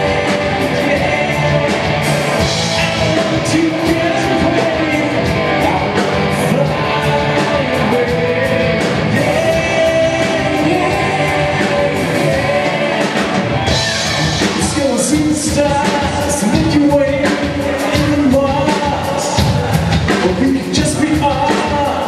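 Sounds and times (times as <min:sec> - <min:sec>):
lead vocal singing: 0:00.0 - 0:22.0
live rock band playing: 0:00.0 - 0:22.0.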